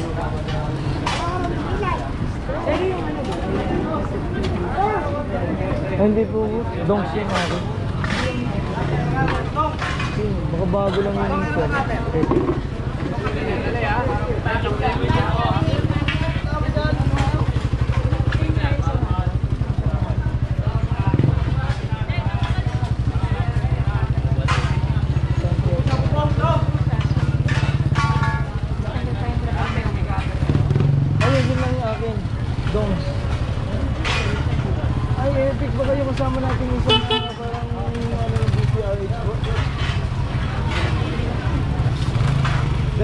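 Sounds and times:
people's voices: 0:00.0 - 0:43.0
motorcycle engine droning: 0:06.0 - 0:43.0.

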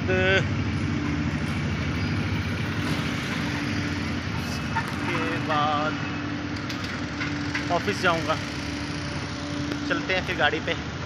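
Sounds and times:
engine humming steadily: 0:00.0 - 0:11.0.

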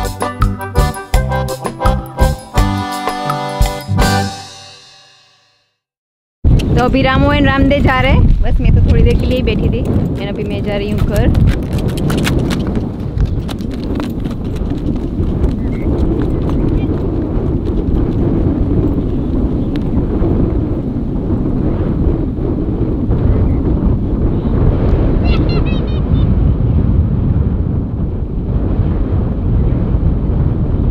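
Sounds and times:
wind rumble on microphone: 0:06.4 - 0:30.9
horse hooves on dirt: 0:07.7 - 0:20.4.

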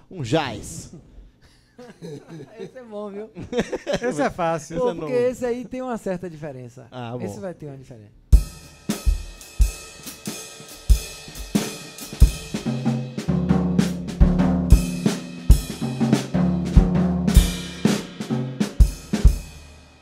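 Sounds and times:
jazz drum kit groove: 0:08.3 - 0:20.0.

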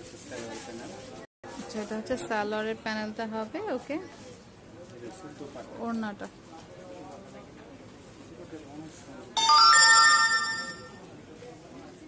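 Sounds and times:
electronic chime ringing: 0:09.4 - 0:11.0.

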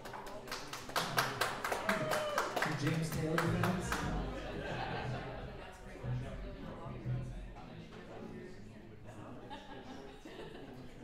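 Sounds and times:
audience clapping: 0:00.0 - 0:04.5.

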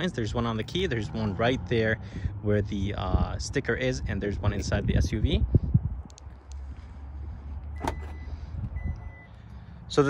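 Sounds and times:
tailgate latch click: 0:07.8 - 0:08.2
short warning beeps: 0:07.8 - 0:09.4.

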